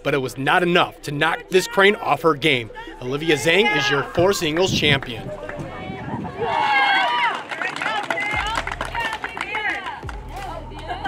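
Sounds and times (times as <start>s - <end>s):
girls squealing and chattering: 2.8s - 4.5s.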